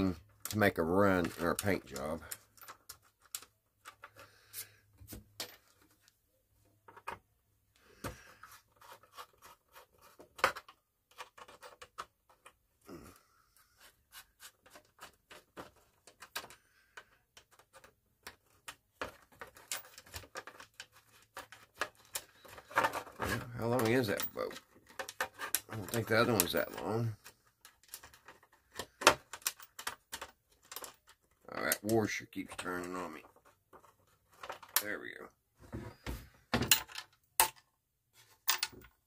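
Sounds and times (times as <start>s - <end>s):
small clicks taps and scrapes: 0.0s - 6.2s, 8.0s - 12.8s, 13.6s - 35.3s.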